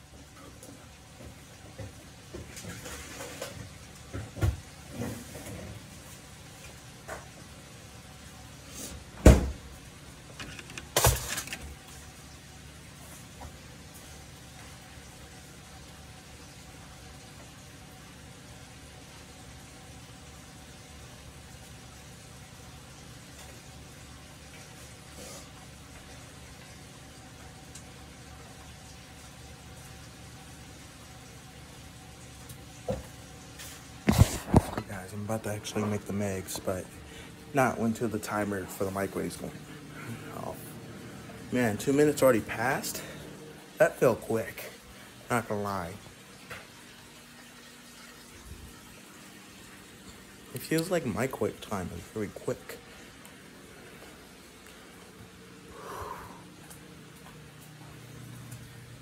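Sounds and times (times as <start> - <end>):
microwave oven humming: 0.0 - 59.0.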